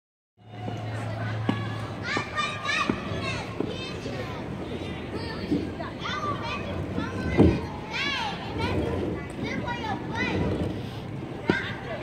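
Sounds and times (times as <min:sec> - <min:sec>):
children calling and chattering: 0:00.4 - 0:12.0.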